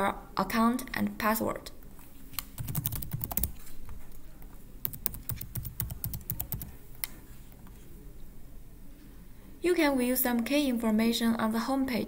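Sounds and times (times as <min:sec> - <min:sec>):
computer keyboard typing: 0:02.4 - 0:03.7, 0:04.8 - 0:06.8.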